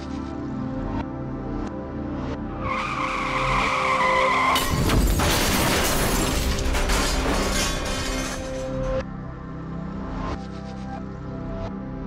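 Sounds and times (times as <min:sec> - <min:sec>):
soft music: 0:00.0 - 0:04.3, 0:06.5 - 0:12.0
car tyres squealing: 0:02.6 - 0:06.2
car crash: 0:02.8 - 0:09.0.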